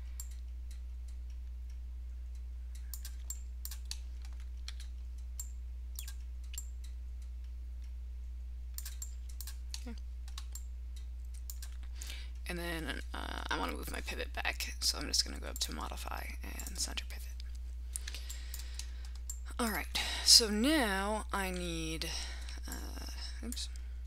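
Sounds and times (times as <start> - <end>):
low electrical hum: 0.0 - 24.0
keyboard and mouse clicks: 0.2 - 1.5, 2.3 - 8.0, 8.8 - 11.8.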